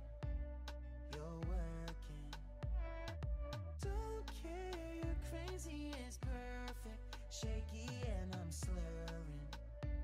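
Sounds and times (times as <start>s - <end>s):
background pop music: 0.0s - 10.0s.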